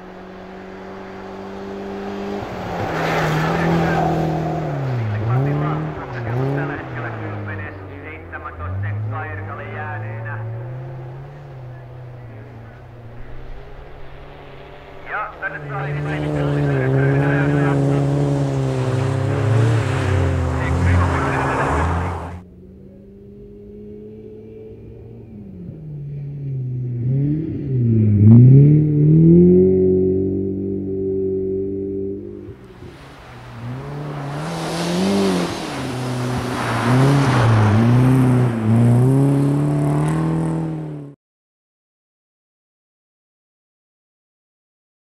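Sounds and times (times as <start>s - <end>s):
rally car engine revving: 0.0s - 41.2s.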